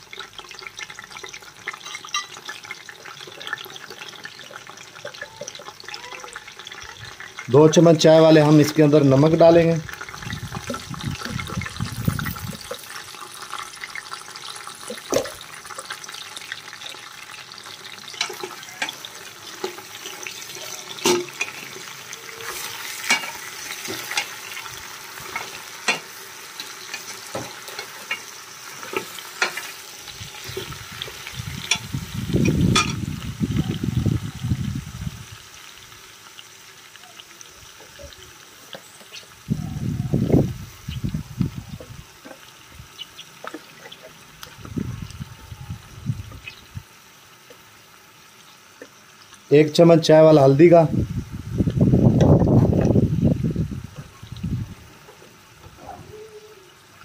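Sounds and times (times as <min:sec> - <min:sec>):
meat sizzling in oil: 0:00.0 - 0:57.0.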